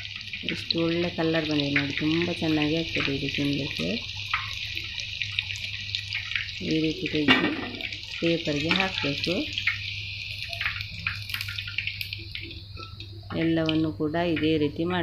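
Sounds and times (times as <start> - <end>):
chicken deep-frying in oil: 0.0 - 15.0
crackles of frying oil: 0.0 - 15.0.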